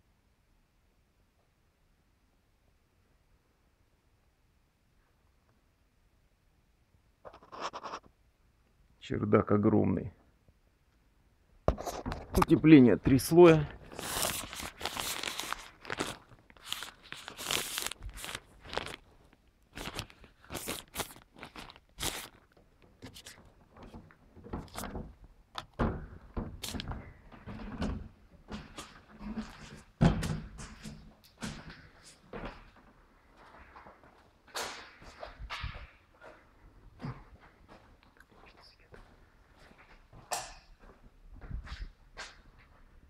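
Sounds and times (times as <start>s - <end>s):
insulation crunching and rustling: 11.7s - 40.2s.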